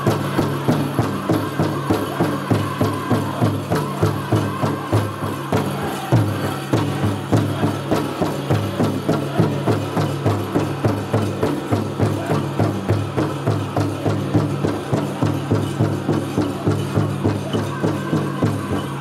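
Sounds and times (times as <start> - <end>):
big drum beating: 0.0 - 19.0
people singing: 0.0 - 19.0.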